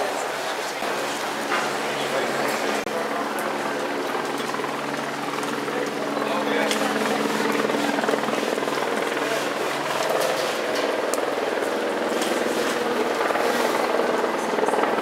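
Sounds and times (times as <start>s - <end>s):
helicopter drone: 0.0s - 15.0s.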